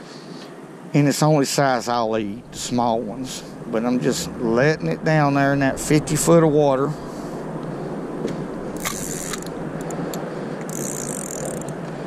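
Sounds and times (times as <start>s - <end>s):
steady rushing background noise: 0.4s - 12.0s
fishing reel clicking and rattling: 8.8s - 11.8s.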